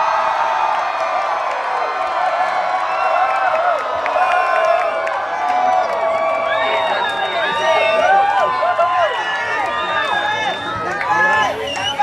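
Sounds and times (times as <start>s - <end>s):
crowd cheering and screaming: 0.0s - 12.0s.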